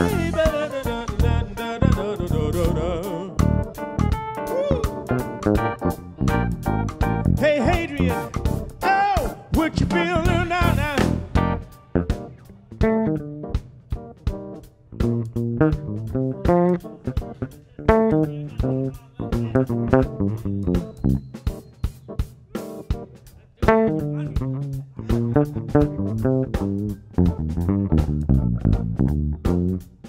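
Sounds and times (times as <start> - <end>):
electric bass lines: 0.0 - 8.8, 9.6 - 13.6, 15.0 - 21.3, 23.7 - 30.0
keyboard chords: 0.0 - 23.1
drum kit: 0.0 - 30.0.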